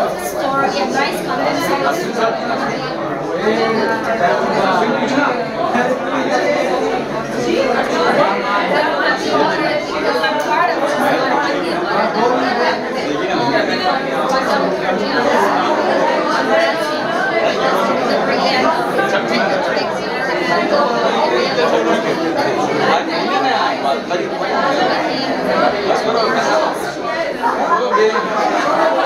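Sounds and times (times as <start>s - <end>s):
crowd chatter in large hall: 0.0s - 29.0s.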